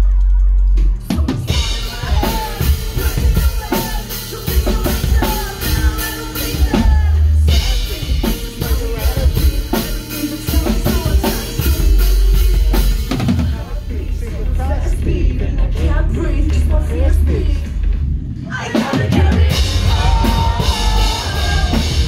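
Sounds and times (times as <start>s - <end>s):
drum kit: 0.0s - 22.0s
singer's voice: 0.0s - 22.0s
electric guitar and bass: 19.4s - 22.0s
deep sustained bass notes: 19.5s - 22.0s.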